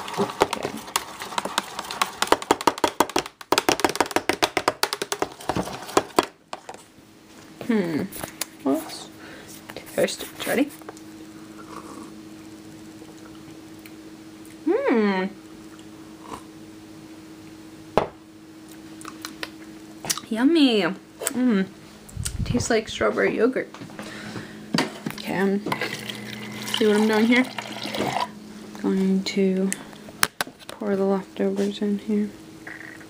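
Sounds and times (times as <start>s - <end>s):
steady low hum: 0.0s - 33.0s.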